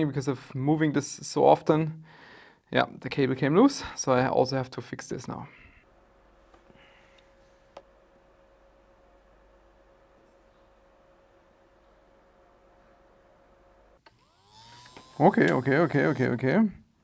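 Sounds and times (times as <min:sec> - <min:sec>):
faint steady hum: 0:05.1 - 0:17.0
pump motor whine: 0:14.0 - 0:16.4.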